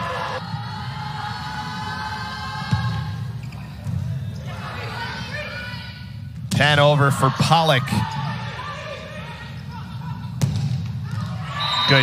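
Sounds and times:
volleyball smack: 10.4s - 11.3s.

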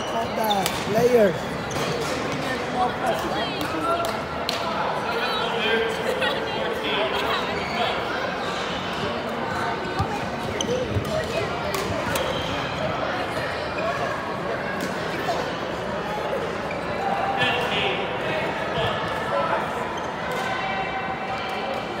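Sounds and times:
sneakers squeaking: 0.0s - 2.9s, 7.2s - 13.0s
background chatter in hall: 0.0s - 22.0s.

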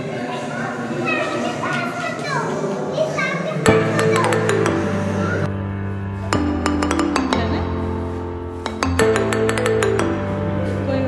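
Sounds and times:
high voices chattering: 0.0s - 11.0s.

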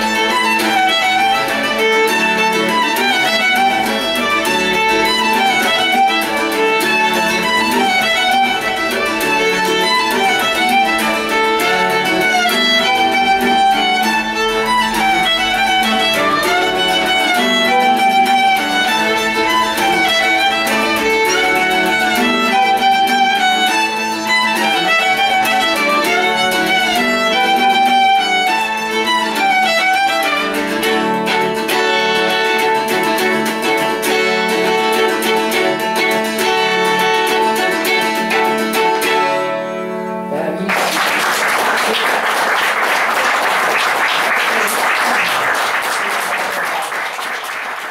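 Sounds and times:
violin and mandola duet: 0.0s - 40.7s
audience applause: 2.9s - 22.9s, 40.6s - 47.9s.

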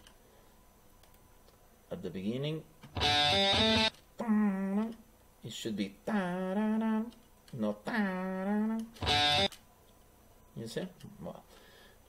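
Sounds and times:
distorted electric guitar: 2.9s - 4.0s, 9.0s - 9.6s.

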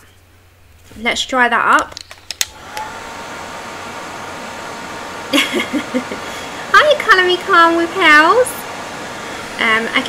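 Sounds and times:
heat gun blowing with high whine: 2.4s - 10.0s.

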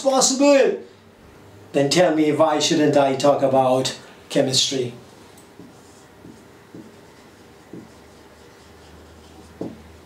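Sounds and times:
marker writing on whiteboard: 5.4s - 10.0s.

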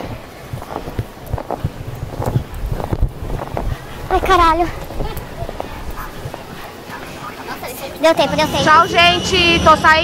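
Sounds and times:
hurried footsteps thudding: 0.0s - 7.3s
wind rumble on microphone: 0.0s - 7.5s.

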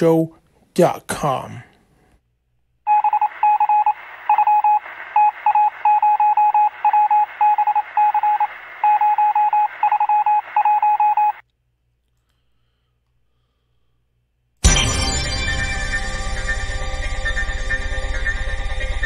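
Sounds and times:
morse code beeping tone: 2.9s - 11.4s.

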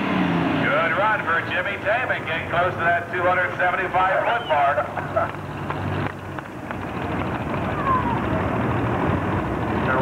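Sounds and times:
tractor engine rumble: 0.7s - 10.0s.

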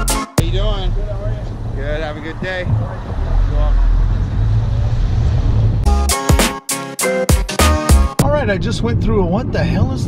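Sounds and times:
car engine and tyres rumble: 0.4s - 5.9s.

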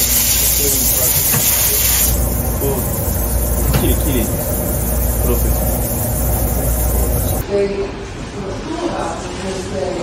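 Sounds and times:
loud steady hiss: 0.0s - 7.4s
low machine hum: 0.0s - 7.4s.

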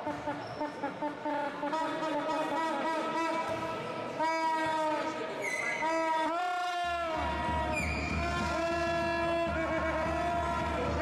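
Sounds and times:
short high-pitched squeak: 5.4s - 6.1s.

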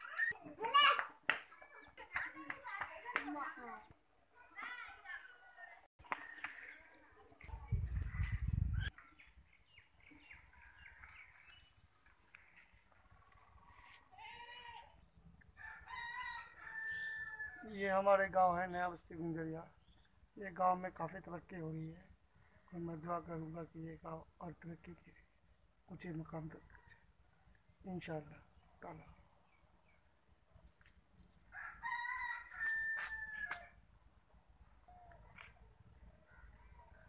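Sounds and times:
rooster crowing: 15.6s - 17.7s, 31.5s - 33.8s.

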